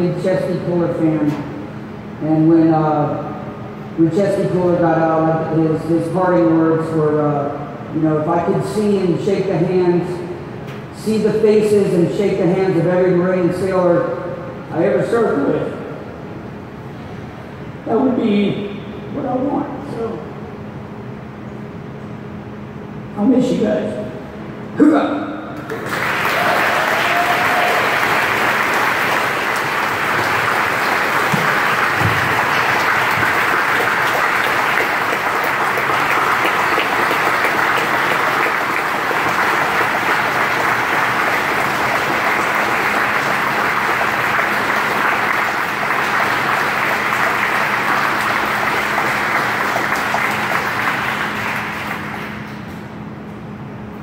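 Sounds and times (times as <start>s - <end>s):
steady low hum: 0.0s - 54.0s
audience applauding: 25.7s - 52.8s.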